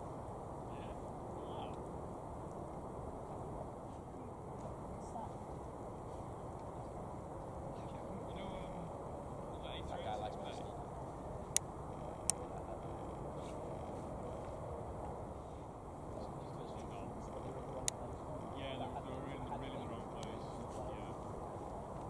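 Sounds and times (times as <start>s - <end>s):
jet engines rumbling at taxi: 0.0s - 22.0s
faint voices: 0.6s - 2.2s, 3.2s - 22.0s.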